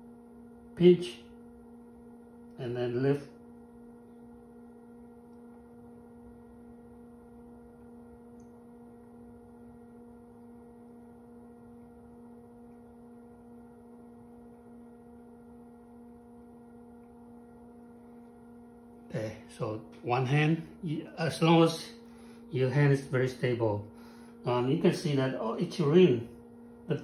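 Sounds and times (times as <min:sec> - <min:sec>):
potter's wheel humming: 0:00.0 - 0:27.0.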